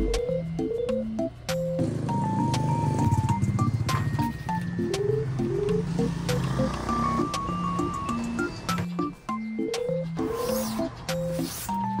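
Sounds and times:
light synth background music: 0.0 - 12.0.

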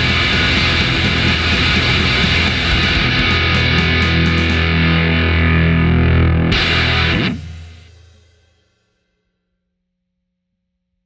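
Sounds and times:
loud final band hit: 0.0 - 5.6
rock band sustained chord: 0.0 - 8.8.

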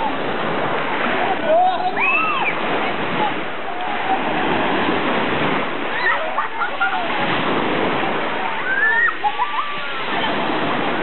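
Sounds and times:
small waves breaking on shore: 0.0 - 11.0.

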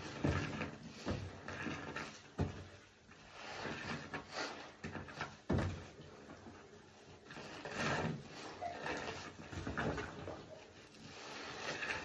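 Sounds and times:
sponge squelching: 0.0 - 12.0.

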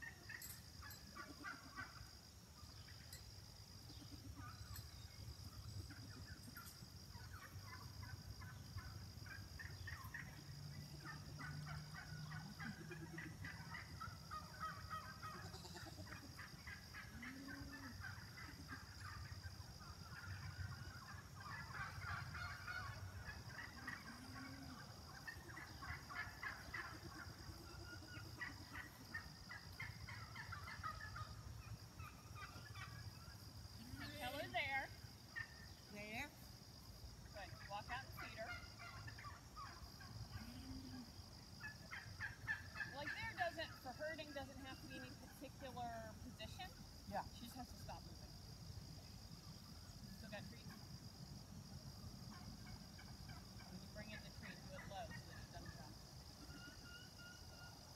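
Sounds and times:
poultry gobbling chatter: 0.0 - 2.1, 5.8 - 36.2, 37.2 - 46.8, 52.3 - 57.9.

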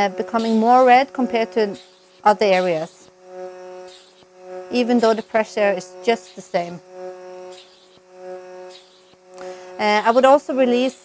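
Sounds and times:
suction machine humming: 0.0 - 11.0.

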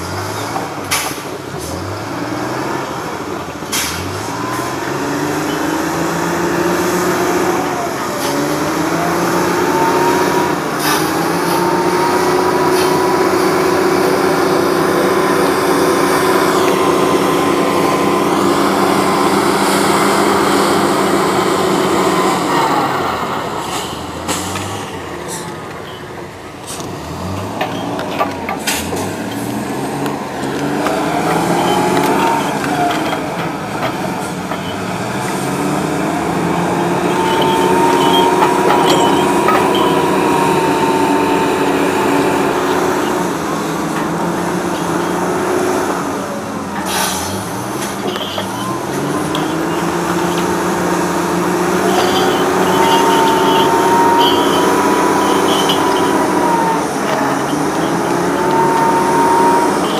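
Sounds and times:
small engine running: 36.5 - 43.8, 47.8 - 59.9.

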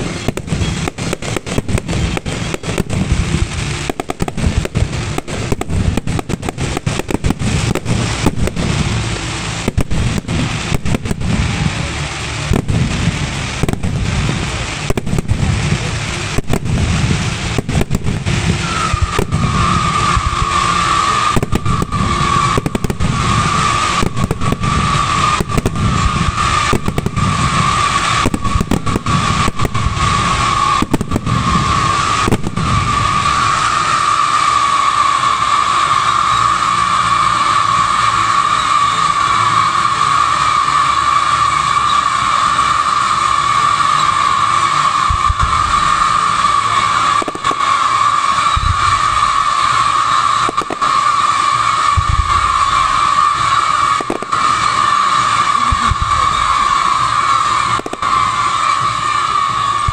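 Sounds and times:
firework shells bursting: 0.0 - 59.9
whistling fireworks: 0.0 - 59.9.

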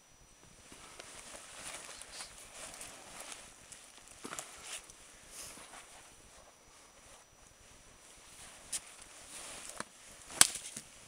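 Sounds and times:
footsteps crunching in snow: 0.6 - 11.0.

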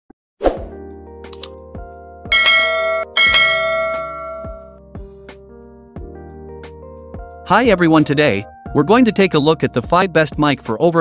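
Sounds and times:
music with soft beat: 0.7 - 11.0
bell-like chimes: 2.3 - 4.8.

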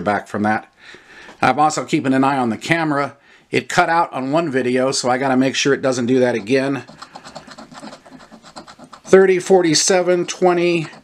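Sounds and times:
scratching lottery ticket coating: 5.8 - 11.0.

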